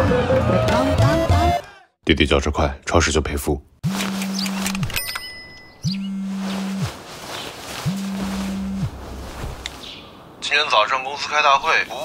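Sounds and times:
phone vibrating buzz: 3.8 - 5.0, 5.9 - 7.0, 7.8 - 9.1.

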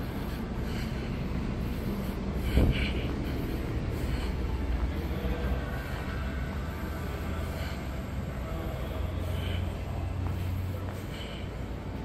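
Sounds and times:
muffled train rumble: 0.0 - 12.0.

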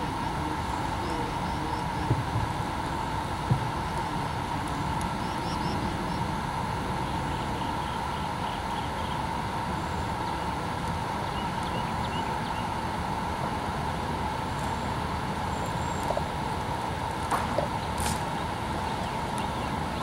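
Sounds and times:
faint steady hum: 0.0 - 20.0
outdoor rumble and hiss: 0.0 - 20.0.

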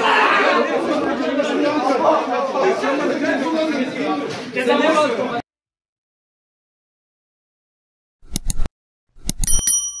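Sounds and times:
bright bell chime: 9.5 - 10.0.

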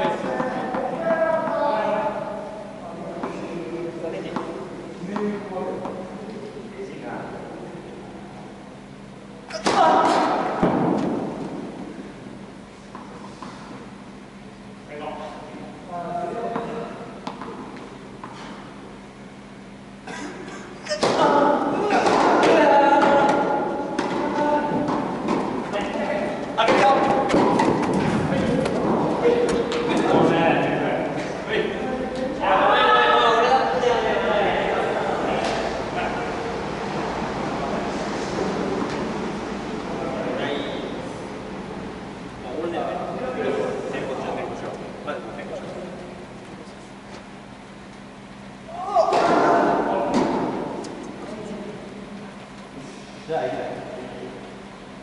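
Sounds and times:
racket hitting tennis ball: 9.5 - 11.7, 20.9 - 25.9, 26.6 - 29.9.

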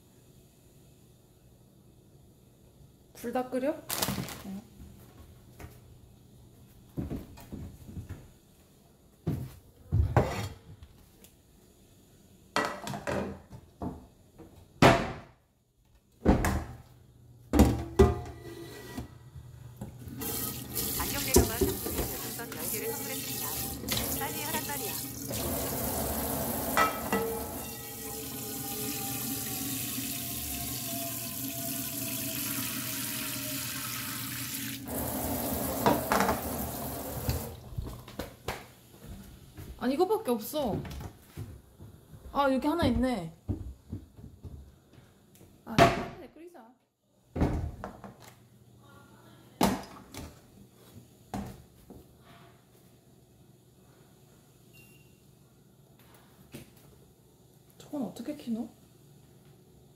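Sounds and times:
frying pan clattering: 26.7 - 27.6.

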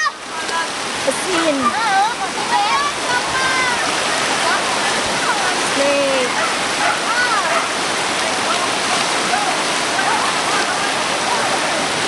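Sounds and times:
river rushing: 0.0 - 12.0.

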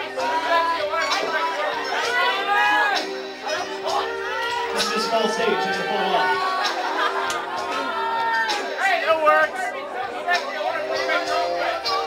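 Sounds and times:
karaoke backing track: 0.0 - 12.0
voices and chatter: 0.0 - 12.0.

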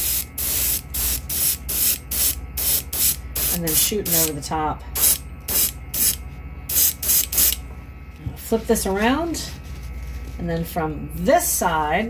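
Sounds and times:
airbrush spraying hiss: 0.0 - 4.3
steady low hum: 0.0 - 12.0.

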